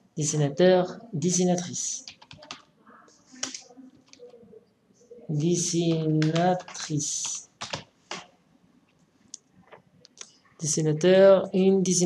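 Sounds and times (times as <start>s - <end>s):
keyboard keys clicking: 2.1s - 2.6s, 5.9s - 8.2s.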